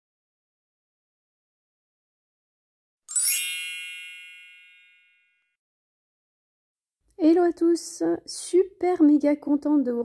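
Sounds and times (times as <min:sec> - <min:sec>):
bell-like metallic chime: 0:03.1 - 0:05.6.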